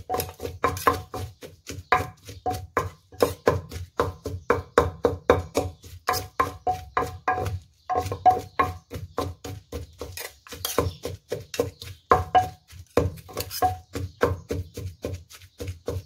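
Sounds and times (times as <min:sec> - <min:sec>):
wooden pestle pounding in clay mortar: 0:00.0 - 0:16.0.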